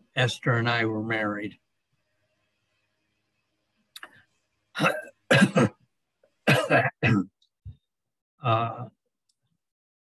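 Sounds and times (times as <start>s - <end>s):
person clearing throat: 4.8s - 5.8s, 6.5s - 7.3s
person coughing: 4.8s - 5.8s, 6.5s - 7.3s.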